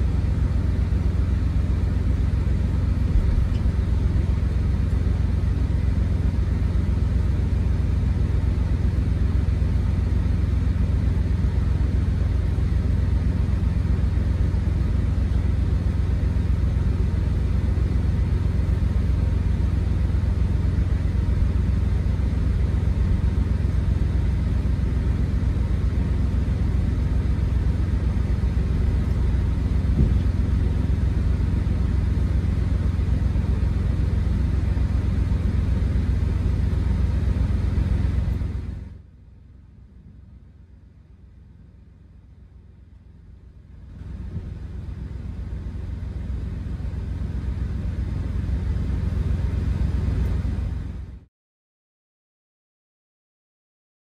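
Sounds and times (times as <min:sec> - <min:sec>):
diesel engine idling: 0:00.0 - 0:51.2.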